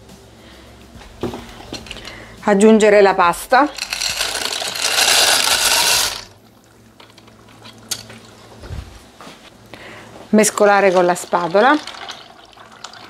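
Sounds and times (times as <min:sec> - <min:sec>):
dry pasta pouring into bowl: 0:03.8 - 0:06.3, 0:10.9 - 0:13.0.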